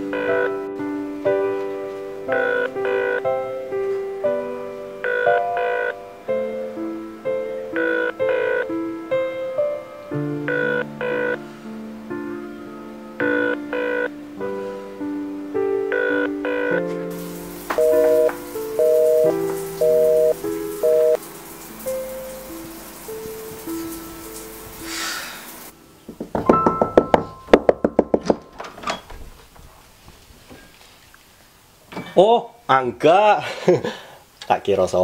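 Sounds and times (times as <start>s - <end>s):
soft piano music: 0.0s - 29.0s.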